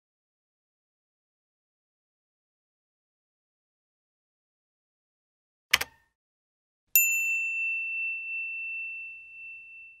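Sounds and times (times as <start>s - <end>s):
high bell chime: 7.0s - 10.0s.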